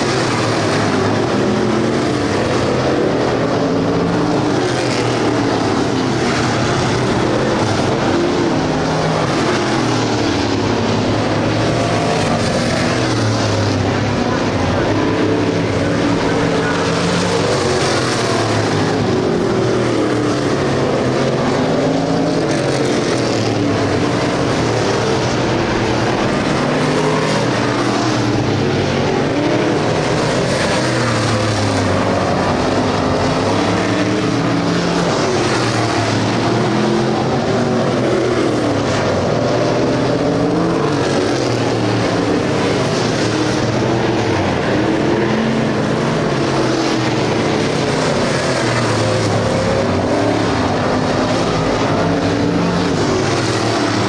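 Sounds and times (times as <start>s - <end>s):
race car engines: 0.0s - 54.0s.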